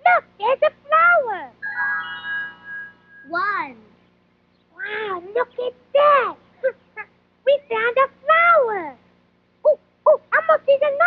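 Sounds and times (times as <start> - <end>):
electronic musical chord: 1.6 - 3.5
high-pitched voice calls: 1.6 - 3.9.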